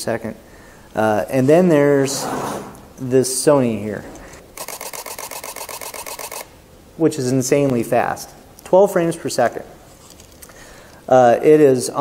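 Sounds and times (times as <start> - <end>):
camera shutter burst clicks: 4.4 - 6.5.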